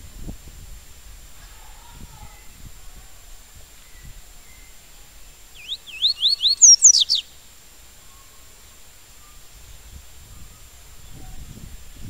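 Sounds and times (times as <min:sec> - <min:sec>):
bird singing whistled notes: 0:03.8 - 0:07.4, 0:08.0 - 0:11.6.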